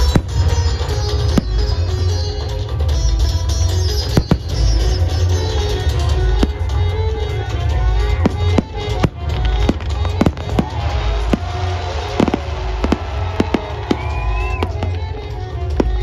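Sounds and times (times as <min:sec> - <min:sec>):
fireworks bangs and crackles: 0:00.0 - 0:03.0, 0:03.9 - 0:16.0
loud music: 0:00.0 - 0:16.0.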